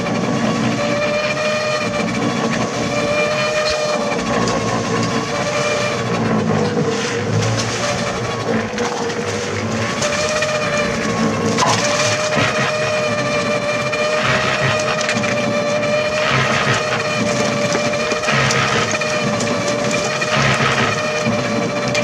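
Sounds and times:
concrete mixer motor hum: 0:00.0 - 0:22.0
concrete tumbling in drum: 0:06.6 - 0:22.0.

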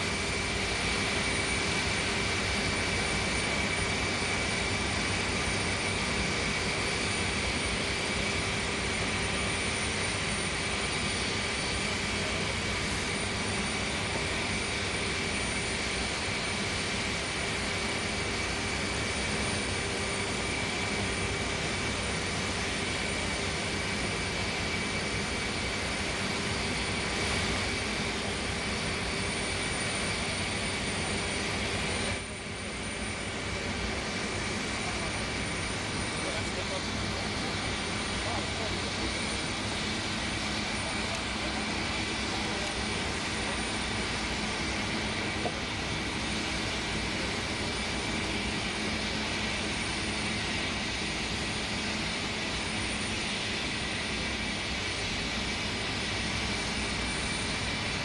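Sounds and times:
jet engines whining roar: 0:00.0 - 0:58.0.

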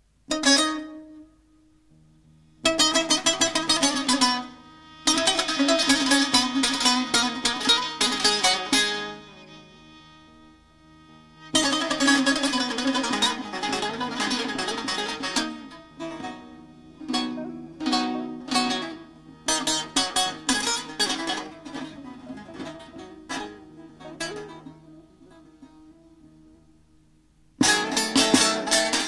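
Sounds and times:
long-necked lute plucked: 0:00.3 - 0:29.0.

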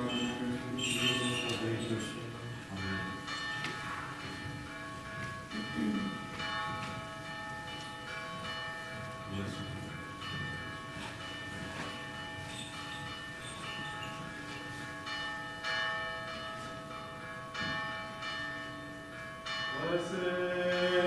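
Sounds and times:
bells ringing: 0:00.0 - 0:21.0
faint low voice: 0:05.6 - 0:06.2.

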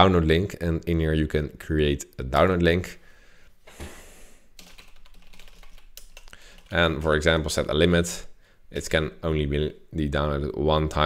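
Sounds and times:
typing on computer keyboard: 0:04.6 - 0:07.3.

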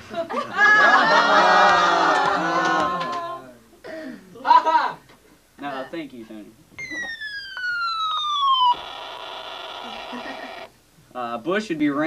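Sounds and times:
electronic falling whistle: 0:06.8 - 0:10.7
harsh electronic buzzing: 0:07.1 - 0:10.7.

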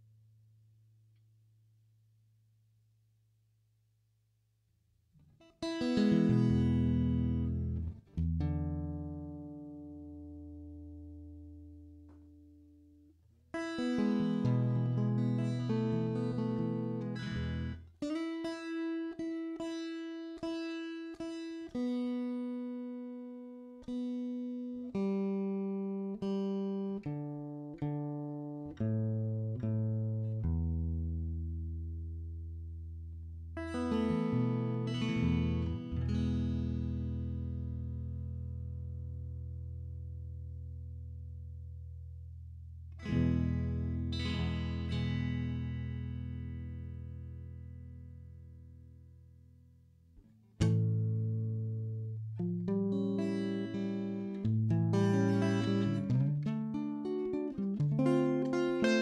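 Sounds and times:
acoustic guitar notes plucked: 0:05.2 - 0:32.6, 0:33.4 - 0:42.0, 0:42.8 - 0:49.3, 0:50.1 - 0:59.0.

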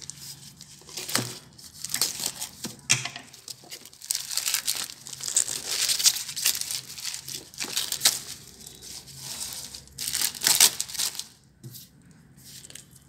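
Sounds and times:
plastic wrapping tearing: 0:00.0 - 0:02.7, 0:03.3 - 0:11.4.

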